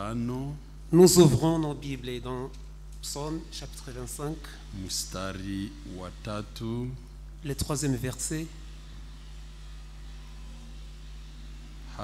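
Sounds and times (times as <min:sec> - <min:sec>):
sound system hum: 0:00.0 - 0:12.0
steady hiss: 0:00.0 - 0:12.0.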